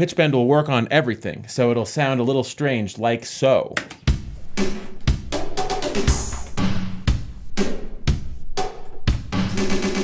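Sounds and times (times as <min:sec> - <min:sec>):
pitch-bent drum beat: 0:04.0 - 0:10.0.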